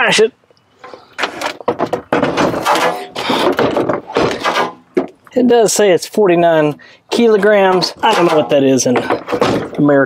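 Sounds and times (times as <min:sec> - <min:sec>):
battery case scraping and squealing: 0:00.8 - 0:04.9.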